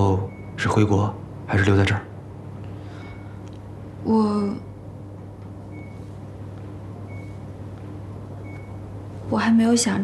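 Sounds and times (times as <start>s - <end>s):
steady low hum: 0.0s - 10.0s
faint high electronic beep: 0.1s - 0.7s, 5.7s - 6.2s, 7.0s - 7.5s, 8.4s - 8.9s.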